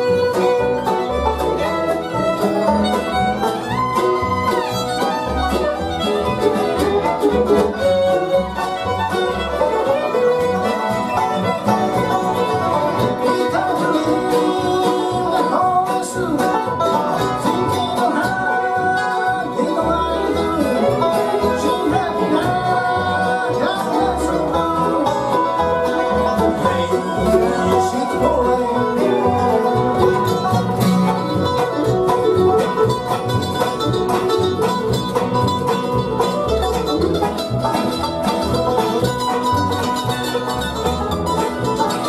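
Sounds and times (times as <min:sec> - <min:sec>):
banjo rolls: 0:00.0 - 0:42.0
bluegrass band playing: 0:00.0 - 0:42.0
plucked upright bass: 0:00.0 - 0:42.0.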